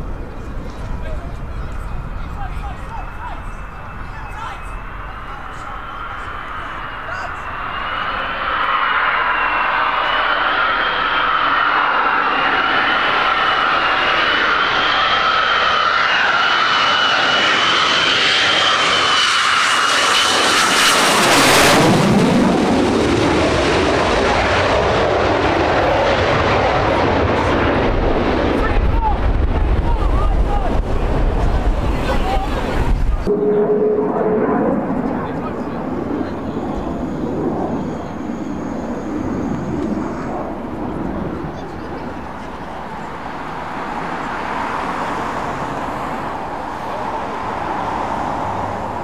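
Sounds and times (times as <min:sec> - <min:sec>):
jet engine whine: 0:00.0 - 0:49.0
jet passing overhead roaring: 0:00.0 - 0:49.0.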